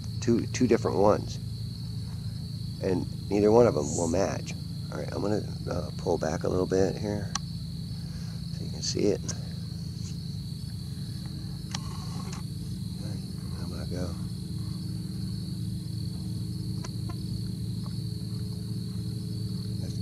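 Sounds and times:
crickets trilling: 0.0s - 20.0s
steady low hum: 0.0s - 20.0s.

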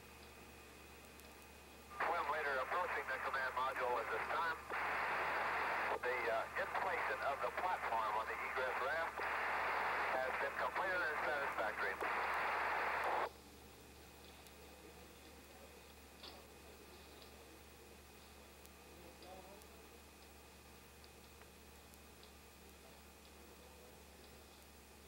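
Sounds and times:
radio static: 1.9s - 13.3s
voice over radio: 2.0s - 13.3s.

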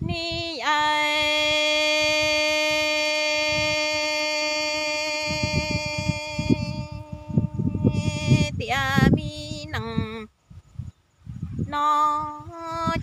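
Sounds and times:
woman singing long note: 0.0s - 10.3s, 11.7s - 13.0s.

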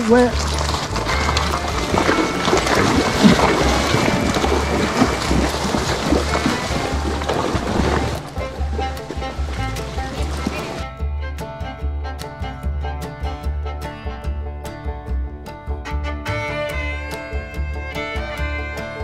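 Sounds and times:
water splashing: 0.0s - 10.9s
country music with plucked strings: 0.0s - 19.0s.

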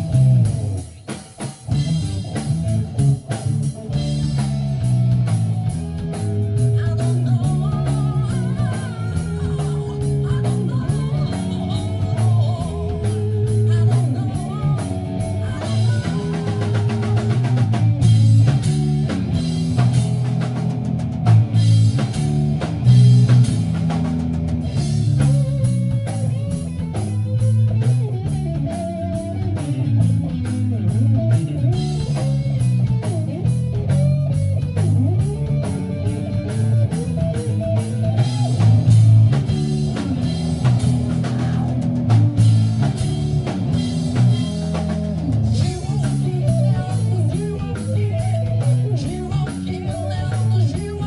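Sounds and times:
bending guitar melody: 0.0s - 51.0s
busy drumming: 0.0s - 51.0s
live rock band playing: 0.0s - 51.0s
steady bass line: 0.0s - 51.0s.

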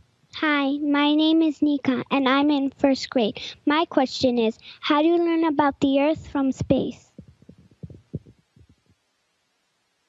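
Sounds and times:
faint low thumps: 6.6s - 8.9s.

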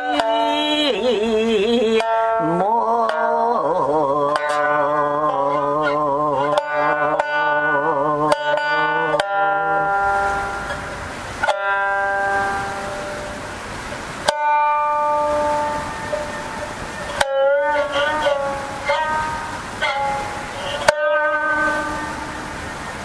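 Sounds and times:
shamisen notes: 0.0s - 23.0s.

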